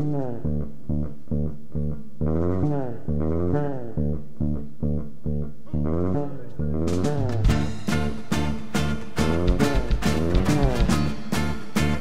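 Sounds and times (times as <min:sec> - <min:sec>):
electric bass riff: 0:00.0 - 0:12.0
plucked strings: 0:00.0 - 0:12.0
drums and cymbals: 0:06.9 - 0:12.0.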